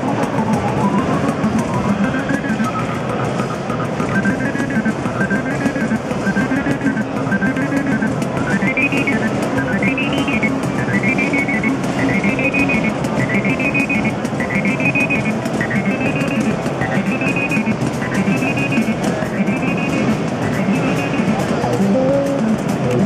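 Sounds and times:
analogue synthesizer sequence: 0.0 - 23.0.

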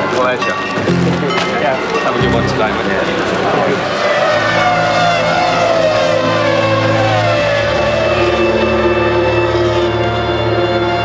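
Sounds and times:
race car engines slowing: 0.0 - 11.0.

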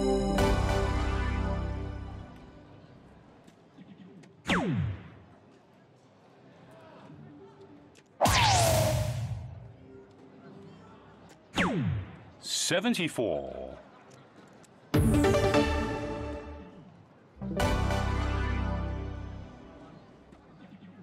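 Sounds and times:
dartboard falling swoop effect: 8.2 - 9.6.

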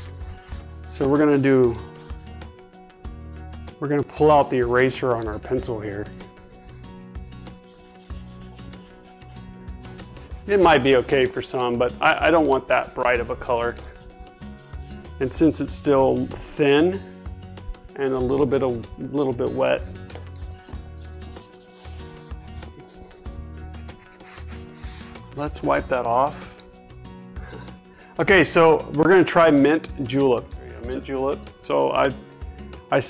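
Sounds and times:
cloth rag rubbing on wood: 0.0 - 2.6, 4.1 - 16.2, 17.8 - 26.0
background music: 0.0 - 33.0.

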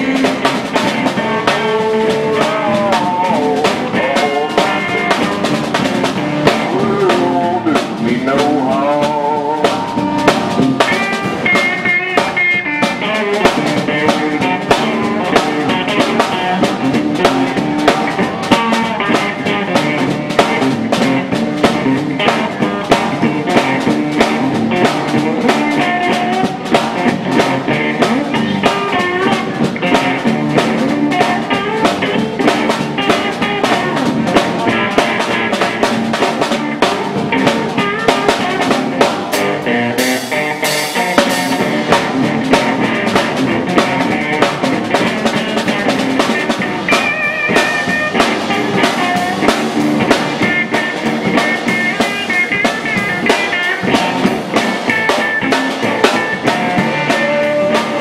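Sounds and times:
drums on snare and cymbals: 0.0 - 58.0
electric guitar playing blues: 0.0 - 58.0.

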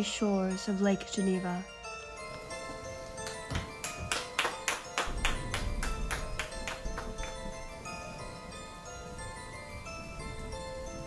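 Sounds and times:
soft background music: 0.0 - 11.0
people clapping hands: 3.1 - 7.5.

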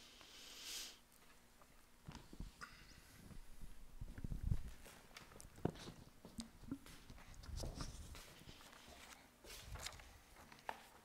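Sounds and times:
faint footsteps and shuffling: 1.1 - 11.0
papers rustling: 6.9 - 11.0.

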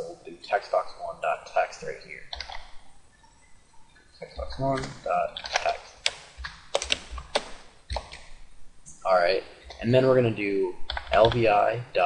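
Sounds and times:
keyboard keystrokes clicking: 4.7 - 8.3.

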